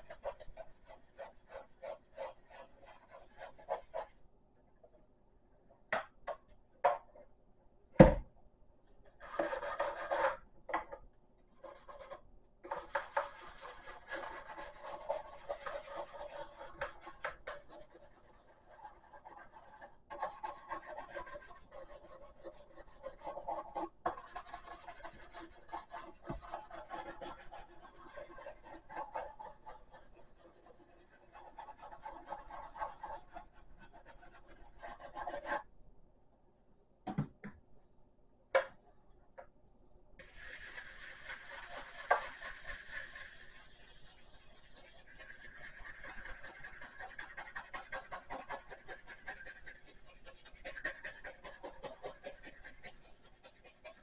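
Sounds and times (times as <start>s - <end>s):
toothbrush scrubbing rough surface: 0.0s - 4.2s, 9.2s - 10.4s, 11.6s - 35.7s, 40.2s - 54.0s.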